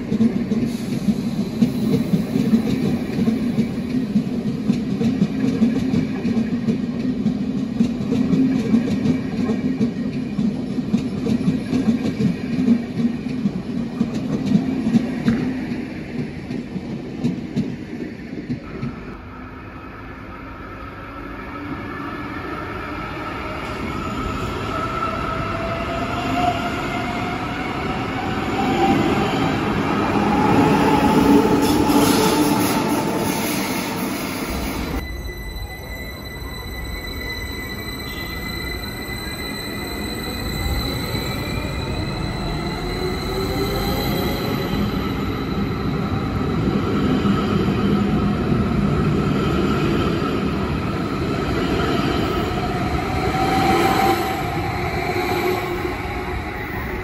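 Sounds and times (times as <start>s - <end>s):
train wheels clicking and rumbling: 0.0s - 19.2s.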